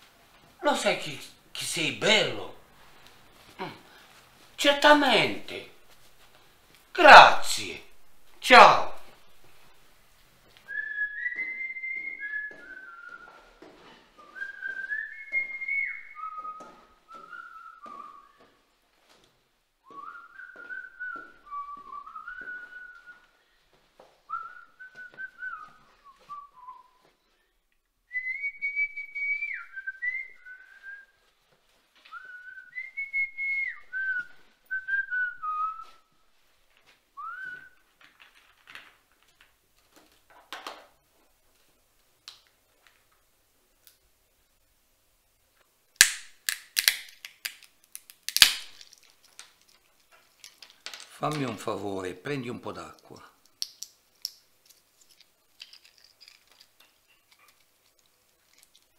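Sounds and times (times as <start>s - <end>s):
person whistling a melody: 10.7s - 13.5s, 14.2s - 18.5s, 19.9s - 23.2s, 24.3s - 27.1s, 32.1s - 36.1s.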